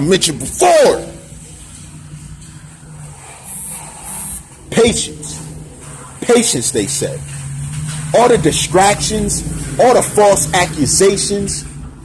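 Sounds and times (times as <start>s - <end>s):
low mechanical rumble with hum: 0.0s - 12.0s.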